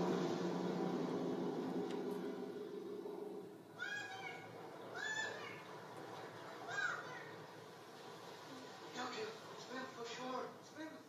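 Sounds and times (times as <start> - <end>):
cartoon cat meowing: 3.8 - 5.6.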